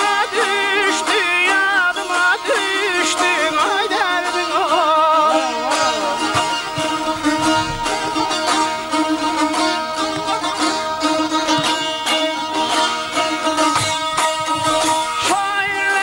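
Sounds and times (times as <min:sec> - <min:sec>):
man singing: 0:00.0 - 0:07.0, 0:15.2 - 0:16.0
plucked lutes folk melody: 0:00.0 - 0:16.0.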